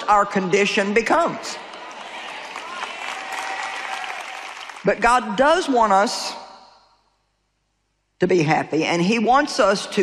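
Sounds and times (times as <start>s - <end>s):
congregation applauding: 1.6s - 4.9s.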